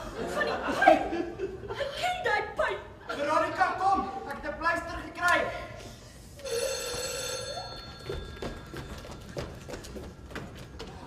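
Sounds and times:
ringing bell-like tone: 6.4s - 9.6s.

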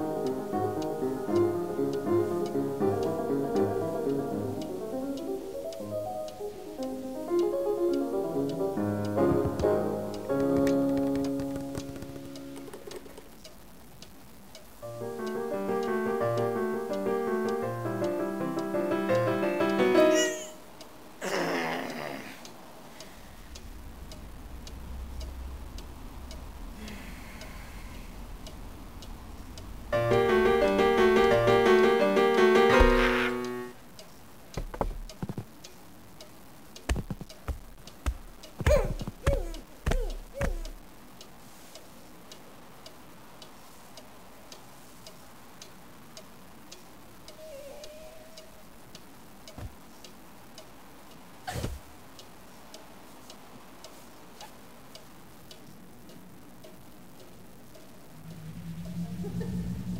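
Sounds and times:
clock ticking: 0.0s - 21.2s, 21.9s - 47.4s, 48.4s - 51.3s, 52.2s - 59.9s
low steady hum: 0.0s - 59.9s
heavy thud: 32.8s - 33.1s
faint wavering tone: 58.0s - 59.9s.

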